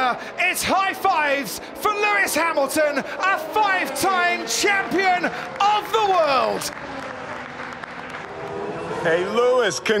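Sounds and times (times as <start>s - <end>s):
people clapping: 4.2s - 8.9s.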